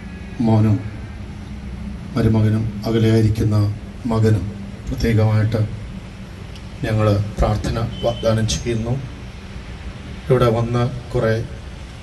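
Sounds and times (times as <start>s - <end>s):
amplified man speaking: 6.8s - 9.1s, 10.3s - 11.6s.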